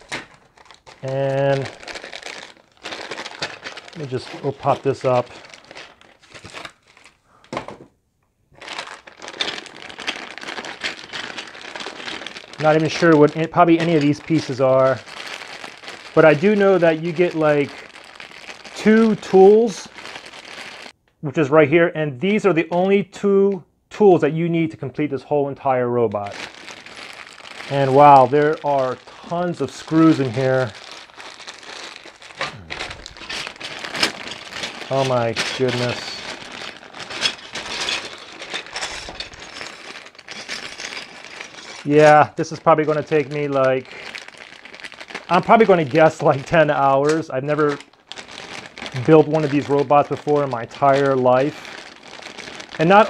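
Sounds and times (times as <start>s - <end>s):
plastic bags crinkling: 0.0s - 7.8s, 8.6s - 21.0s, 26.2s - 53.0s.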